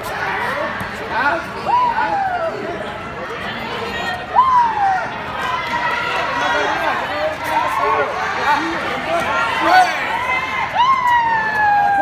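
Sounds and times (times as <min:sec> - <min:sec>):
crowd background in hall: 0:00.0 - 0:12.0.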